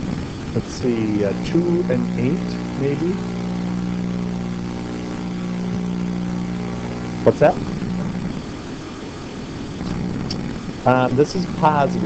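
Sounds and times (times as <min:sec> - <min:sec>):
low background hum: 0:00.0 - 0:12.0
man saying um: 0:00.6 - 0:03.3, 0:07.2 - 0:07.6, 0:10.9 - 0:12.0.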